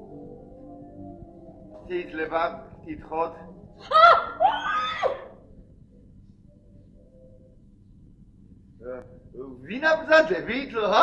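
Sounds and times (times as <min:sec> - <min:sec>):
faint steady tone: 0:00.0 - 0:11.0
recording hiss: 0:00.0 - 0:11.0.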